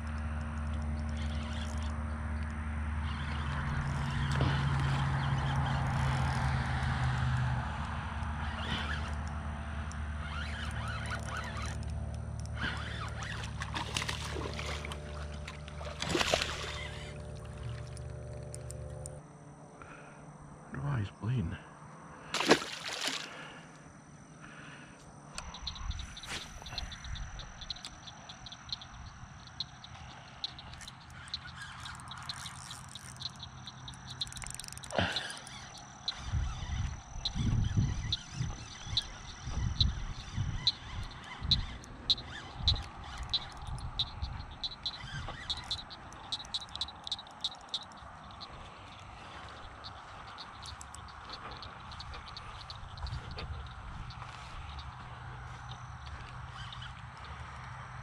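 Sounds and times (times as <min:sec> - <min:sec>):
rapid clicking animal calls: 0:00.0 - 0:07.6, 0:08.2 - 0:18.8, 0:25.3 - 0:58.0
fish splashing into water: 0:13.4 - 0:17.9, 0:22.3 - 0:23.5.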